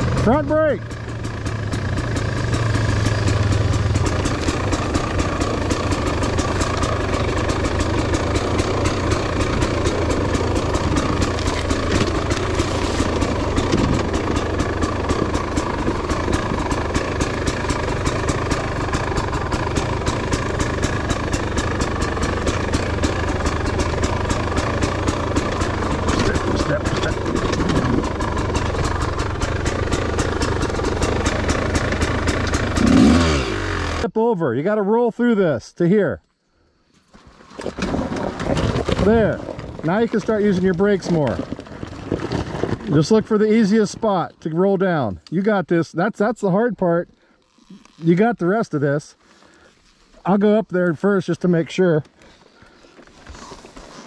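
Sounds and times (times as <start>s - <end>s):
dirt bike engine at low revs: 0.0s - 34.2s, 37.3s - 45.5s, 46.1s - 54.0s.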